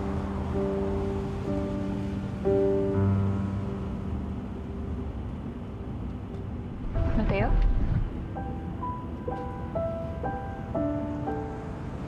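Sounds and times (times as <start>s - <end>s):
car rumbling in motion: 0.0s - 10.6s.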